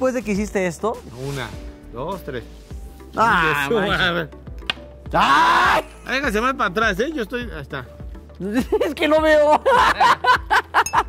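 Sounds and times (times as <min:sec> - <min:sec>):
background music: 0:00.0 - 0:11.0
man crying out: 0:05.1 - 0:06.0.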